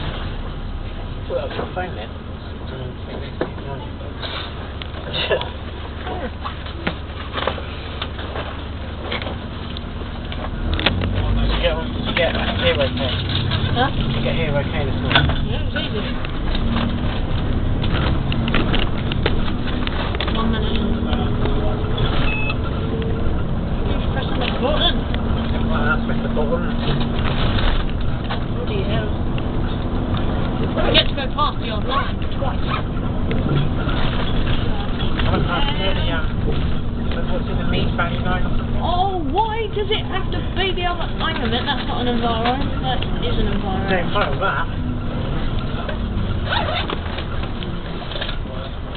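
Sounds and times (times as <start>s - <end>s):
bus engine hum and road noise: 0.0s - 48.9s
sharp rattles and knocks: 6.4s - 39.4s.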